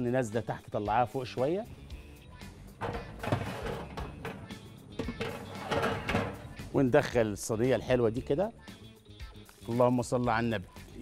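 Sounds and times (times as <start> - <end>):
background music: 0.0 - 11.0
metal oven rack clattering: 2.8 - 6.5.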